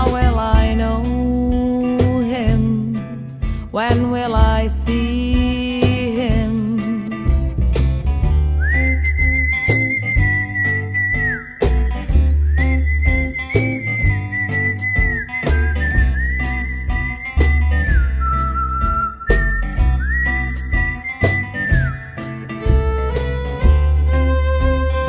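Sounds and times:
bass line: 0.0s - 25.0s
steady beat: 8.3s - 25.0s
whistled melody: 8.6s - 23.2s.

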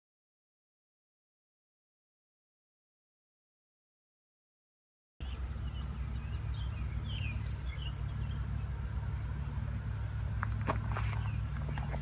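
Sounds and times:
birds chirping: 5.2s - 12.0s
low machine hum: 5.2s - 12.0s.

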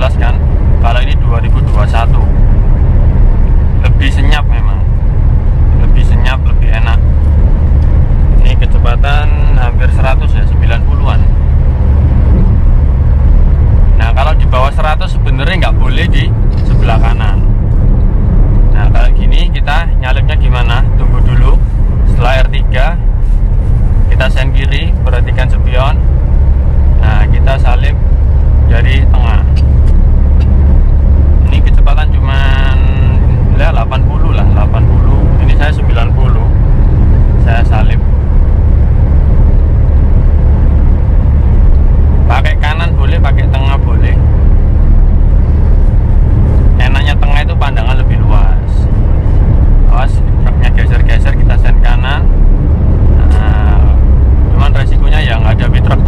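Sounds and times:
engine and road noise drone: 0.0s - 56.0s
person talking: 14.0s - 17.5s.

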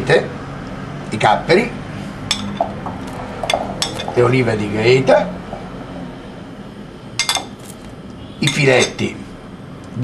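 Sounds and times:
olives clinking against pan: 2.3s - 4.2s, 7.2s - 7.7s, 8.4s - 9.1s.

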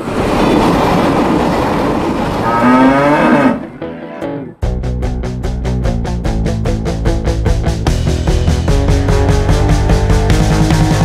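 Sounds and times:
freight train rumbling and rattling: 0.0s - 2.7s
cow mooing: 2.4s - 4.4s.

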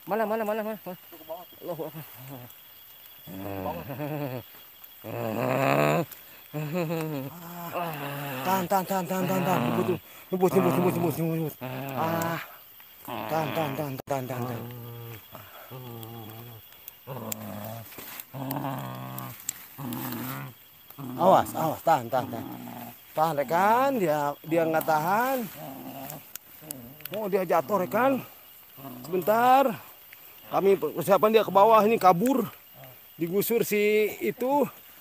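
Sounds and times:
man growling and groaning: 3.3s - 4.4s, 5.0s - 28.1s
man making low wordless sounds: 5.0s - 12.5s, 13.1s - 19.3s.

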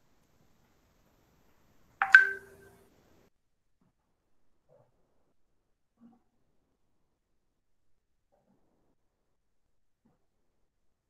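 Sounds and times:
two-tone notification chime: 2.0s - 2.7s.

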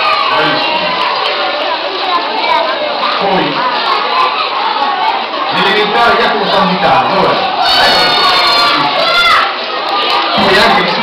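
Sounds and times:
children cheering: 0.0s - 11.0s.

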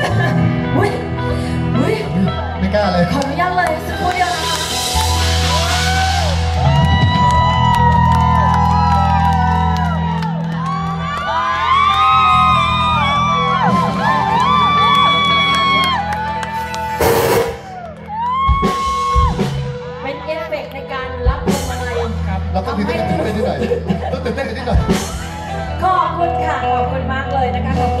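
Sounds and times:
live band music: 0.0s - 28.0s.

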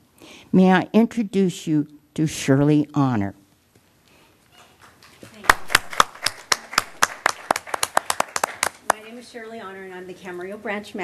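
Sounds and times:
people clapping: 4.6s - 9.2s.

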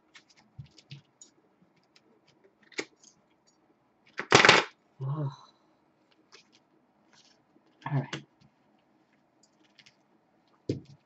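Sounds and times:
card snap: 4.2s - 4.7s.

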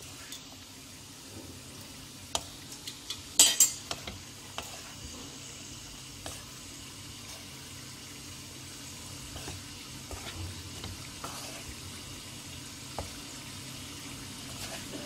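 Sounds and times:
spatula stirring rice in a pan: 0.0s - 0.8s, 1.8s - 15.0s
low sizzle: 0.0s - 15.0s.

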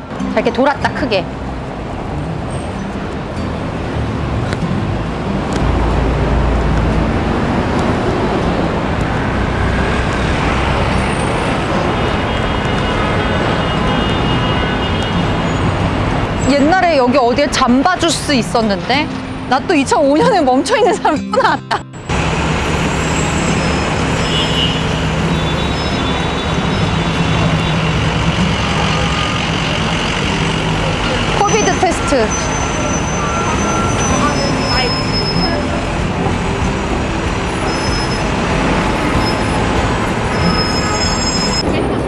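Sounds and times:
engine hum: 0.0s - 21.1s, 21.9s - 42.0s
road traffic noise: 0.0s - 42.0s.

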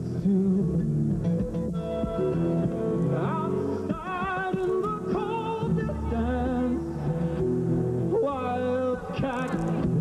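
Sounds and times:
acoustic guitar plucked: 0.2s - 10.0s.

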